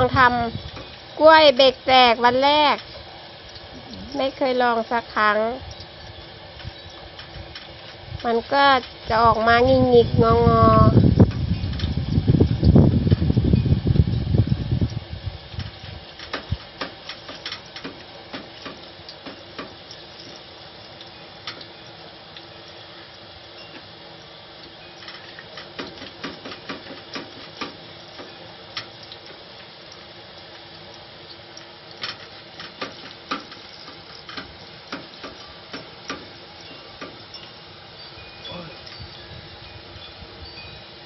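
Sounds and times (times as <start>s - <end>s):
slices sizzling in hot oil: 0.0s - 12.7s, 13.4s - 41.0s.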